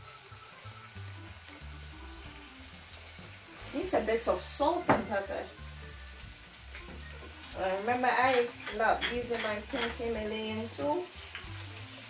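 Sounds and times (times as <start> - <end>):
prawns sizzling in a pan: 0.0 - 12.0
soft background music: 0.0 - 12.0.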